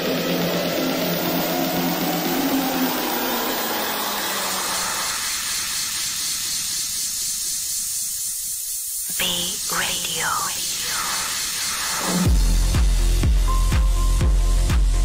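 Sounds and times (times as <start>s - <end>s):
white noise riser: 0.0s - 13.2s
electronic dance music: 9.1s - 13.9s.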